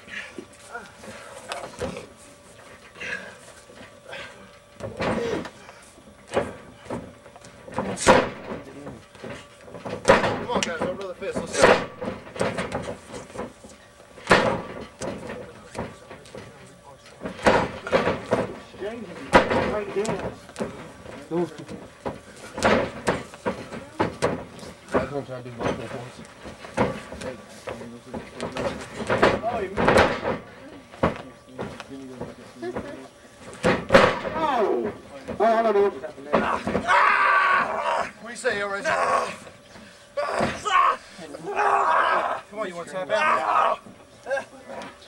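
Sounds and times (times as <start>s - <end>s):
people shouting: 36.4s - 38.2s, 38.8s - 39.5s, 40.2s - 42.5s, 43.1s - 43.9s.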